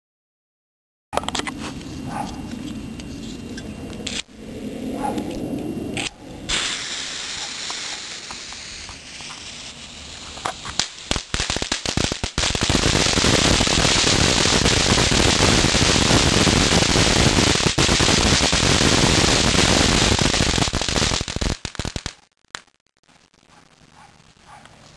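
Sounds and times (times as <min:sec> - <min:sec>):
firework pop: 0:06.0 - 0:09.4
firework crackling: 0:06.5 - 0:24.9.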